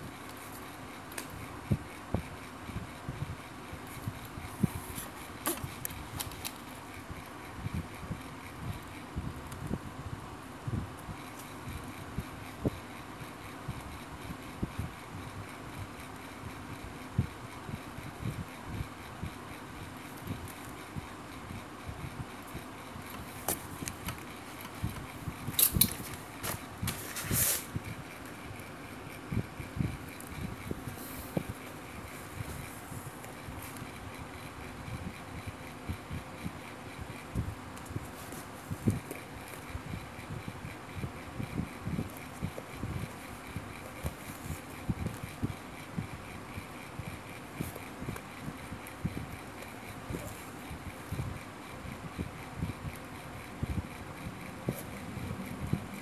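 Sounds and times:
faint hum: 0.0s - 56.0s.

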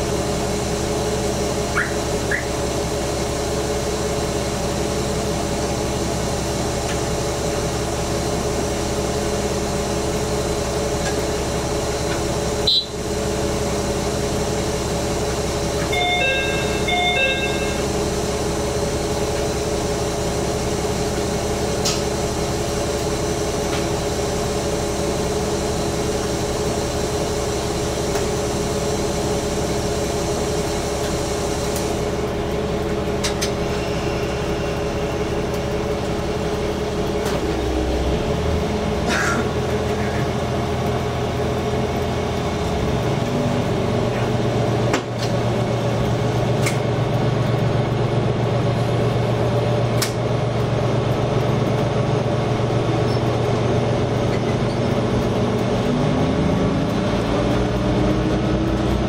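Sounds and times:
diesel railcar idling: 0.0s - 59.0s
two-tone electronic chime: 15.9s - 17.9s.

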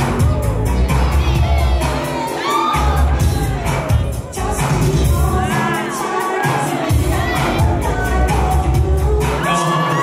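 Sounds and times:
crowd shouting and cheering: 0.0s - 10.0s
dance music with heavy bass: 0.0s - 10.0s.

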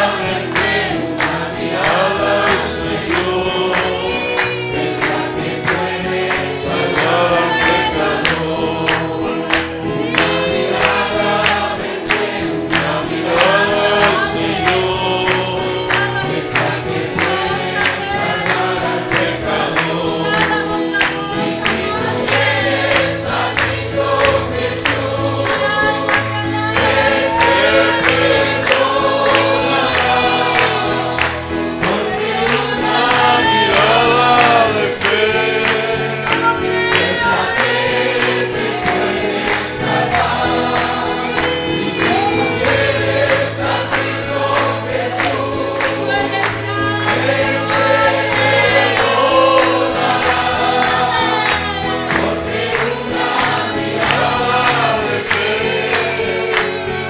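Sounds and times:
congregation singing: 0.0s - 57.0s
rhythmic hand-clapping: 0.0s - 57.0s.

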